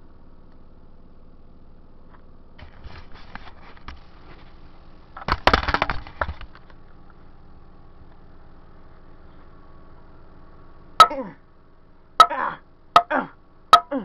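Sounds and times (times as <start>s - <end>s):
loud crackling of plastic case: 5.2s - 6.7s.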